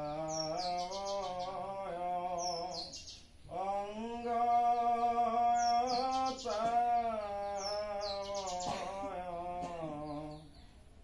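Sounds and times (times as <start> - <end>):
men chanting: 0.0 - 10.5
bird chirping: 0.0 - 11.0.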